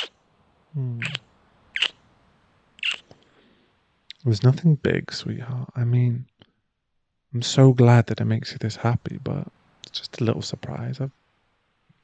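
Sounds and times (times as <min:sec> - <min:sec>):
man humming low: 0:00.8 - 0:01.2.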